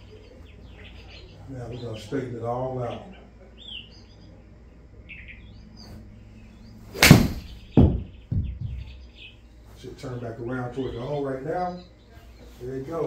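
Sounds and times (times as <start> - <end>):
golf club striking ball: 7.0 - 8.1
dull thuds: 7.0 - 8.9.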